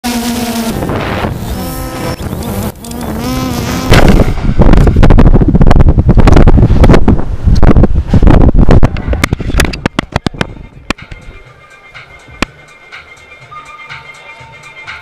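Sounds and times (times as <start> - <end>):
drone motors whining: 0.1 - 5.1
wind buffeting microphone: 0.7 - 11.4.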